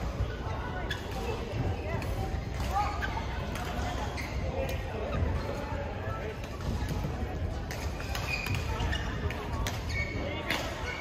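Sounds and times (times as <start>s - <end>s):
shoes squeaking on court floor: 0.0s - 1.6s, 2.6s - 11.0s
echoing background chatter: 0.0s - 11.0s.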